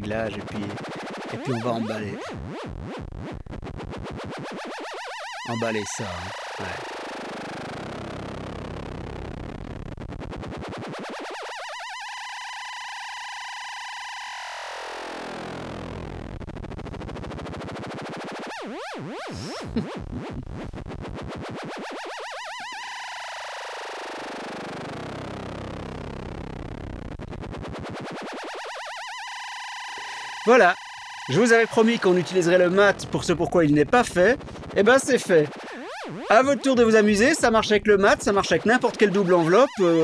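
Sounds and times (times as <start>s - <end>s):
buzzy synthesizer tones swooping: 0.0s - 40.0s.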